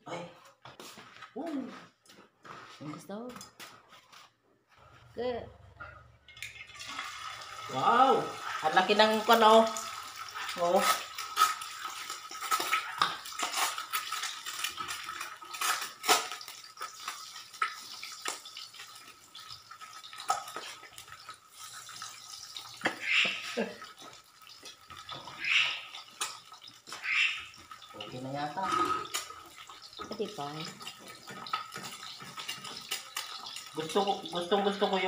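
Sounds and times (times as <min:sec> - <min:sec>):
egg sizzling in hot oil: 0:06.3 - 0:35.0.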